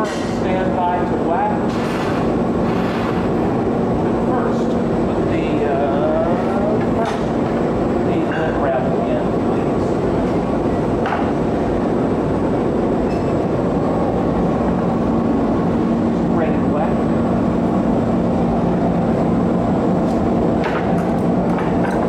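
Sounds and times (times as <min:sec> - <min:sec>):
gas burners and blowers rushing: 0:00.0 - 0:22.0.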